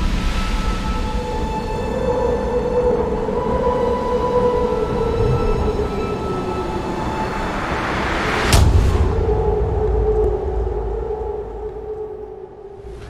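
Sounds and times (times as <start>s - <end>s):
deep rumble drone: 0.0s - 13.0s
sustained sinking tone: 1.4s - 13.0s.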